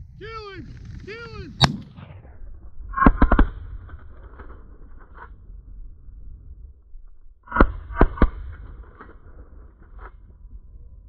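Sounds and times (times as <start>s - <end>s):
shotgun shots with echo: 1.6s - 2.0s.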